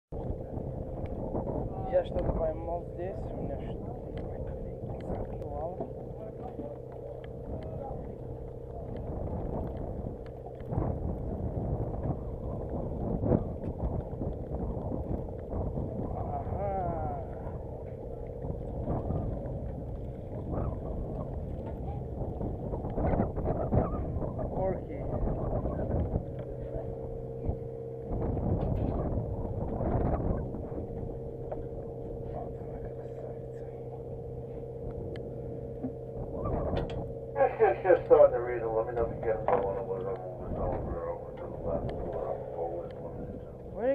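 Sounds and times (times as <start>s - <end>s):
boat engine humming: 0.1s - 43.9s
low rush: 0.1s - 43.9s
indistinct voices: 15.9s - 19.4s, 30.0s - 43.9s.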